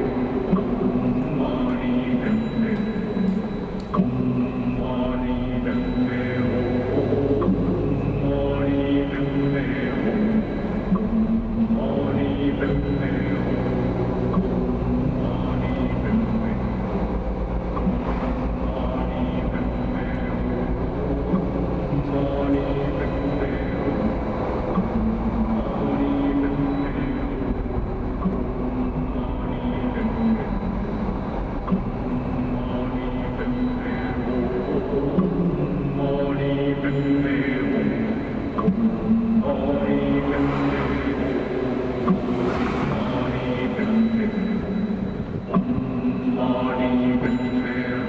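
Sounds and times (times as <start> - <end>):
car road and engine rumble: 0.0 - 48.0.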